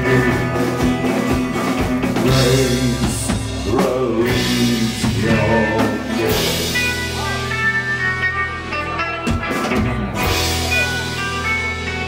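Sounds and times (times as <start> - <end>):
drums: 0.0 - 12.0
electric guitar: 0.0 - 12.0.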